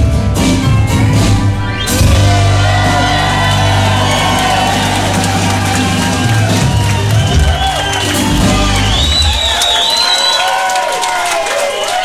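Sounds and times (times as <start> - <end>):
rock band with acoustic guitars: 0.0 - 10.4
crowd cheering and whooping: 1.6 - 12.0.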